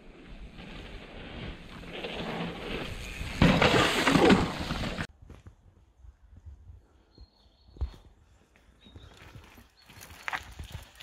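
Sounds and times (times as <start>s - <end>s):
bike tyres clattering over rocks: 1.6s - 5.1s.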